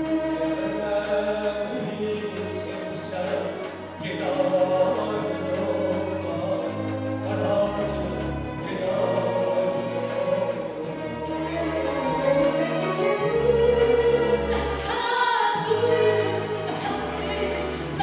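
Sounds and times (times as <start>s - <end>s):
bowed strings: 0.0s - 18.0s.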